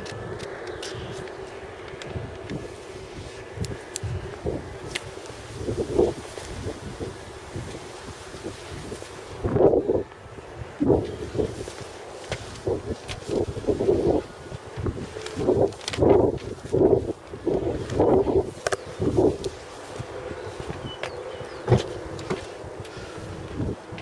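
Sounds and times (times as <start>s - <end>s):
wind noise on microphone: 0.0s - 24.0s.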